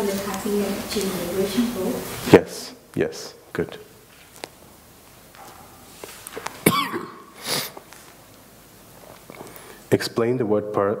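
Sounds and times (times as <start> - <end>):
person coughing: 6.6 - 7.8.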